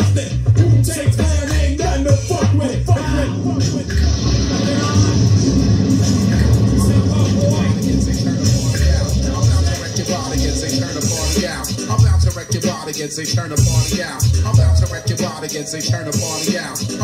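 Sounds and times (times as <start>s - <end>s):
hip-hop track with bass beat: 0.0s - 17.0s
voice over beat: 0.0s - 17.0s.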